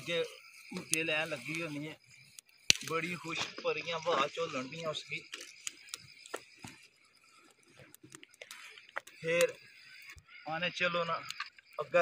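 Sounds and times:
campfire crackling: 0.0 - 12.0.

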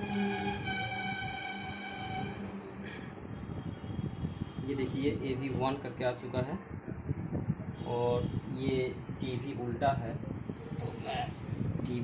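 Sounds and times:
long horn blast: 0.0 - 4.4.

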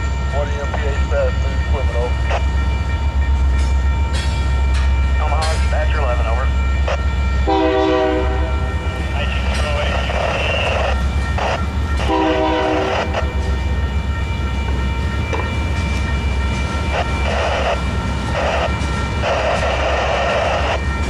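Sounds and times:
freight train rumbling past: 0.0 - 21.0
train horn blasts: 7.4 - 9.0, 10.5 - 13.7.

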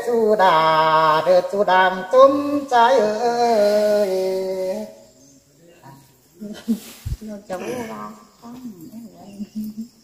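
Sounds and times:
person singing: 0.0 - 5.0.

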